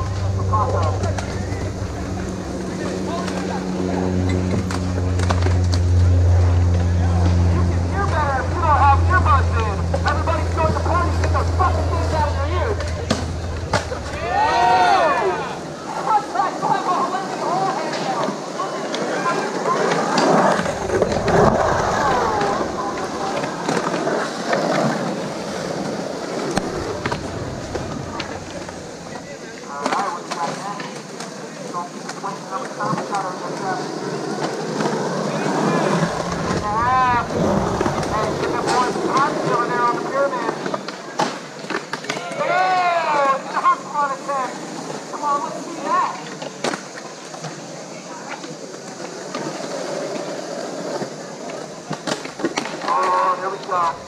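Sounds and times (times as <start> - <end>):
onlookers talking and calling out: 0.0 - 40.7
skateboard wheels rolling on concrete: 0.0 - 54.0.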